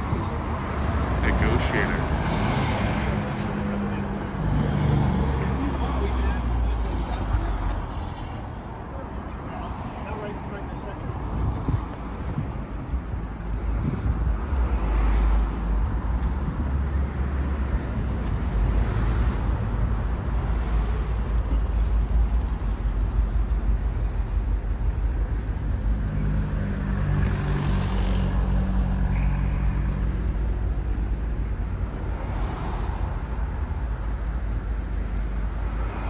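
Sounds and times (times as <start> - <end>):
road traffic rumble: 0.0 - 36.0.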